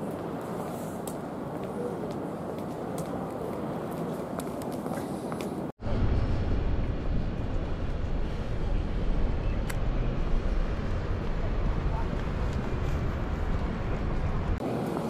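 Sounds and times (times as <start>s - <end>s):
city street traffic: 0.0s - 15.0s
heavy low rumble: 5.8s - 14.6s.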